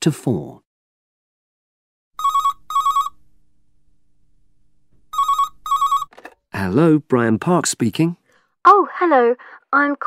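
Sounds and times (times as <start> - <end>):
telephone ringing: 2.2 - 3.2, 5.1 - 6.2.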